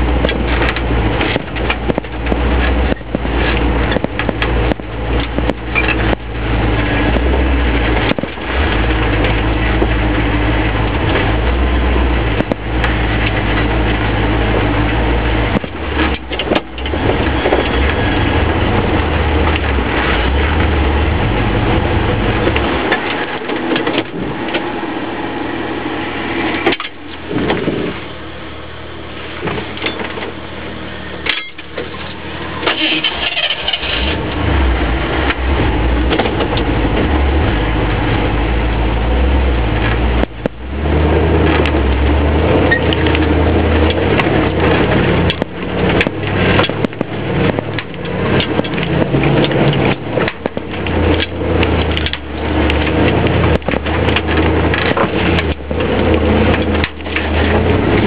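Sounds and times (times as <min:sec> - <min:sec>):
car engine under load: 0:00.0 - 0:58.0.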